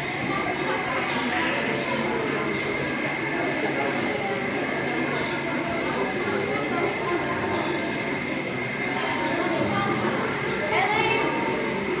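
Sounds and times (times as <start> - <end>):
murmur of voices: 0.0 - 12.0
steady high-pitched hum: 0.0 - 12.0.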